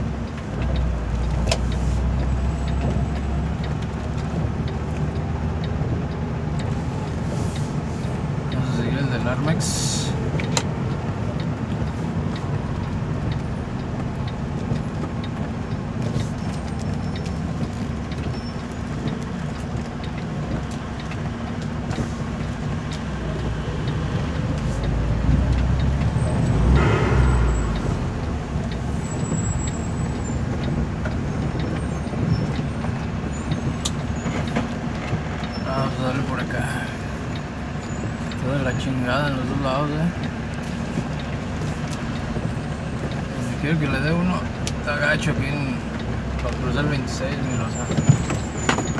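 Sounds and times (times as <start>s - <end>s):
road noise on wet road: 0.0s - 48.9s
vehicle engine running: 0.0s - 48.9s
low rumble: 23.2s - 31.0s.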